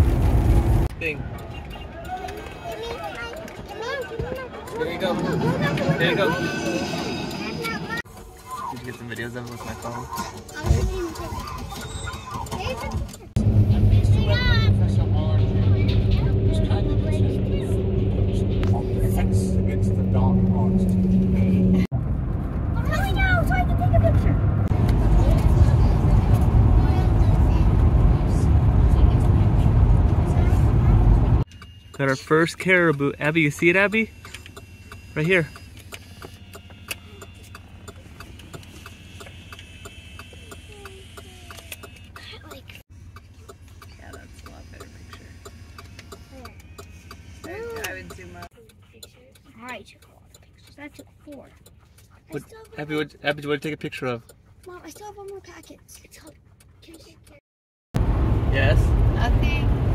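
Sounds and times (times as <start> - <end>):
low rumble: 0.0 - 0.9, 13.4 - 31.5, 58.0 - 59.9
car road noise drone: 0.0 - 12.0, 12.6 - 57.2, 58.0 - 59.9
voices: 0.9 - 21.9, 32.0 - 57.4.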